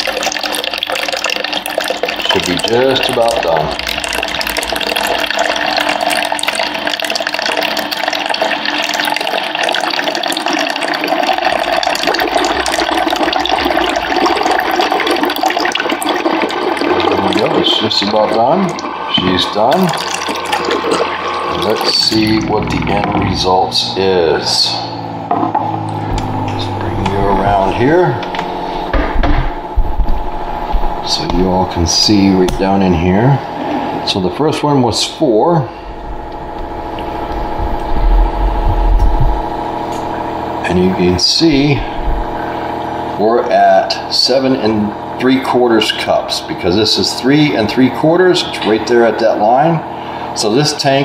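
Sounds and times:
water streaming into a cup: 0.0 - 28.8, 29.7 - 51.0
faint steady hum: 0.0 - 51.0.

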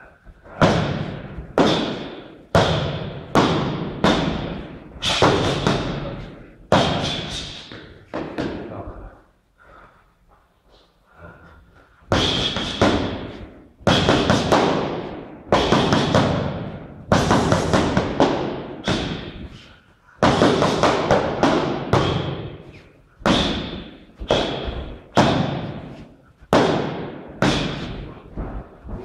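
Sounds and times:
gloved punches thudding on pads: 13.9 - 19.3.

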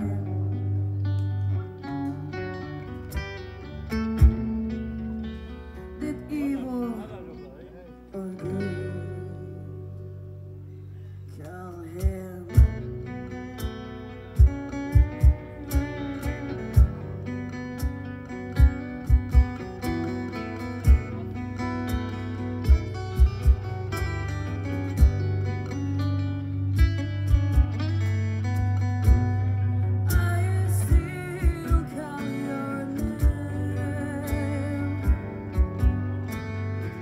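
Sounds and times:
woman singing: 0.0 - 0.9, 6.0 - 7.3, 8.1 - 10.1, 11.3 - 13.1, 30.0 - 35.6
electric and acoustic guitars: 0.0 - 37.0.

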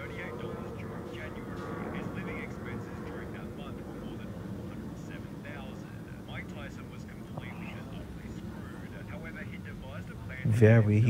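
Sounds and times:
muffled narrating voice: 0.0 - 11.0
steady low rumble: 0.0 - 11.0.

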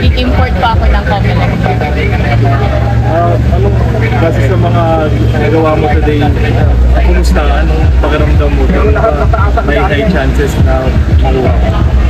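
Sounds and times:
people talking: 0.0 - 12.0
ventilation fan humming: 0.0 - 12.0.

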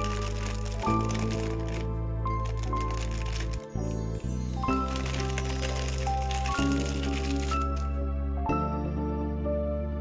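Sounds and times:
plastic bag crackling: 0.0 - 3.8, 4.6 - 8.0
soft background music: 0.0 - 10.0.

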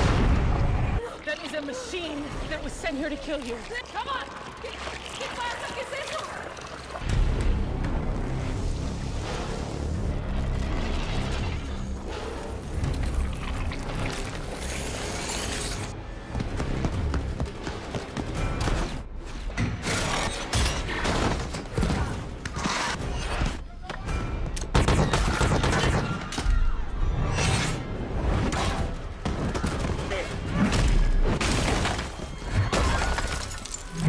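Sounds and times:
film score music: 0.0 - 34.0.

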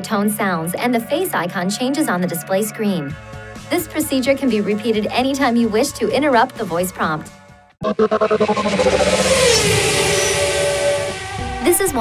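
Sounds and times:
loud rushing noise: 7.8 - 11.8
car engine note: 7.8 - 12.0.

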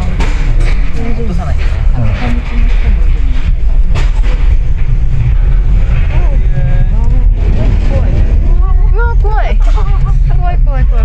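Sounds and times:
gondola cabin low rumble: 0.0 - 11.0.

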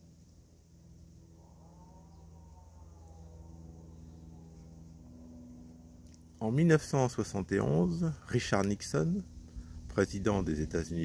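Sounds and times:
faint rising and falling whine: 0.0 - 11.0
faint steady low hum: 0.0 - 11.0.

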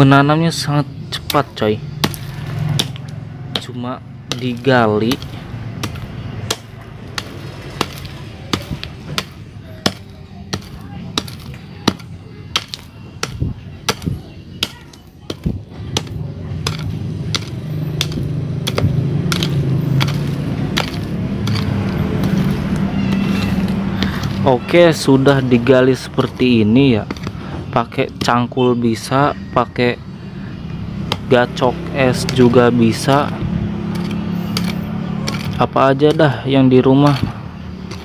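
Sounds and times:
metal pick striking stony soil: 1.2 - 29.1, 31.0 - 38.0.

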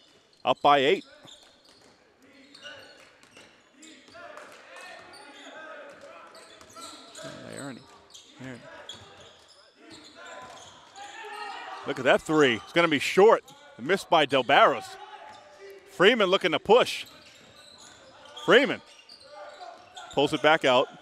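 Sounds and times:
voices echoing in gym: 0.4 - 21.0.

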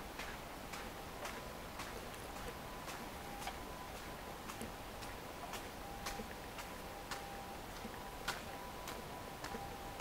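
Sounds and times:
faint steady tone: 0.0 - 10.0
footsteps on paved path: 0.0 - 10.0.

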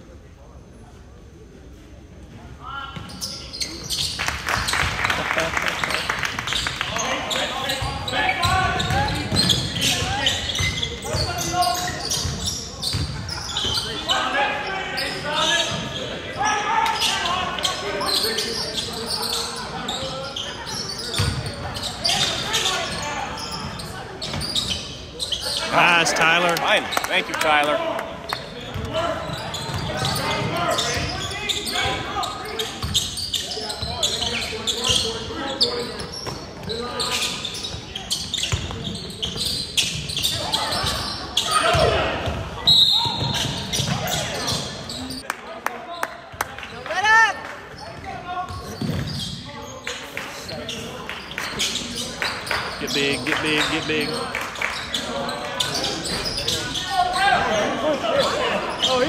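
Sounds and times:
players and spectators shouting: 25.6 - 28.1.

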